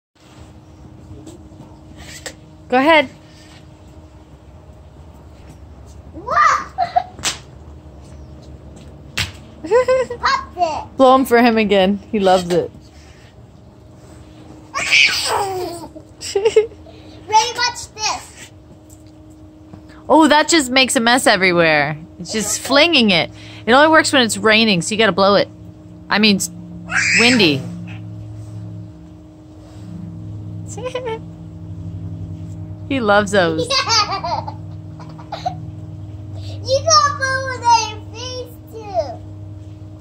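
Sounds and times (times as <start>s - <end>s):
low motor hum: 0.2s - 40.0s
young child's voice: 6.2s - 7.1s, 10.2s - 11.0s, 17.3s - 18.5s, 36.4s - 39.2s.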